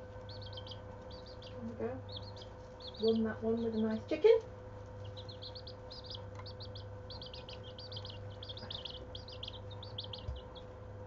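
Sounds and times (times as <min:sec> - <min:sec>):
chicks peeping: 0:00.0 - 0:11.0
steady low hum: 0:00.0 - 0:11.0.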